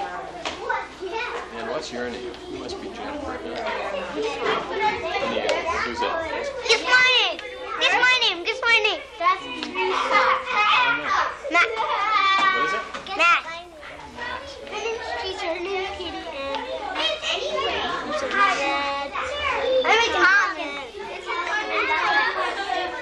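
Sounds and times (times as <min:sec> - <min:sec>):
young children talking and calling: 0:00.0 - 0:23.0.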